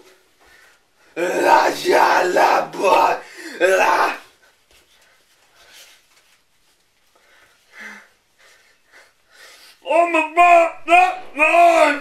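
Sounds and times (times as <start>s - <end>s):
man screaming vocal: 1.2s - 4.4s, 9.8s - 12.0s
man breathing heavily: 3.2s - 3.7s, 7.0s - 9.8s.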